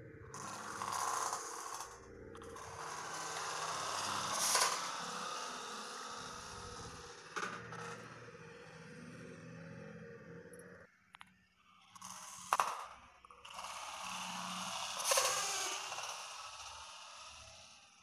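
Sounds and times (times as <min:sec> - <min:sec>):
plastic egg rolling across tiles: 0:00.4 - 0:07.9, 0:11.9 - 0:17.8.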